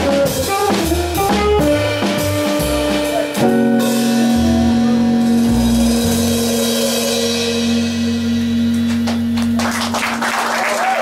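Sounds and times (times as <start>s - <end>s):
walking double bass: 0.0s - 10.3s
tenor saxophone long note: 0.4s - 8.8s.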